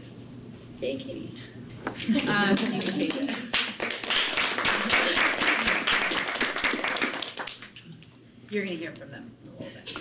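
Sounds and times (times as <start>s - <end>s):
audience clapping: 2.2s - 7.8s.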